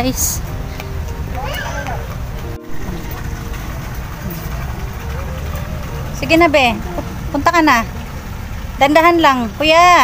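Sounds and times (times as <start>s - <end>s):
low outdoor rumble: 0.0s - 10.0s
faint voices: 1.2s - 8.7s.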